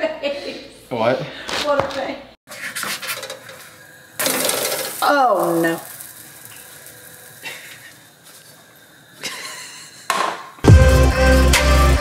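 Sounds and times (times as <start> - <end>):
pancake sizzling in frying pan: 2.9 - 9.7.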